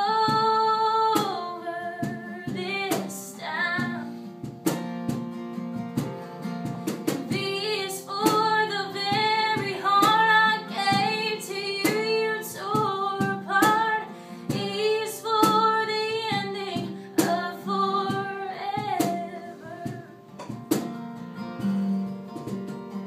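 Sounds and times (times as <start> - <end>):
woman singing: 0.0 - 4.2, 7.2 - 20.3
strummed acoustic guitar: 0.0 - 23.0
cajon beats: 0.1 - 23.0.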